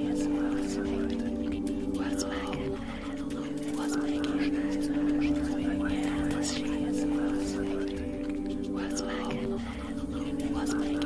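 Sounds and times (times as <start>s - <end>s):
ambient drone music: 0.0s - 11.0s
breathy whispered voices: 0.0s - 11.0s.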